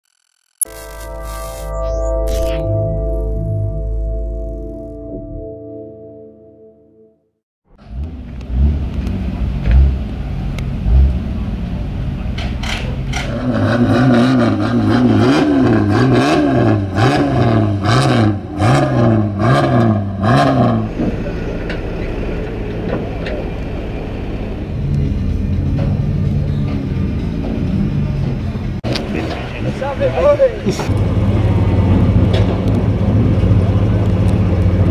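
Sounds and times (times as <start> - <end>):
car engine revving: 7.8 - 34.9.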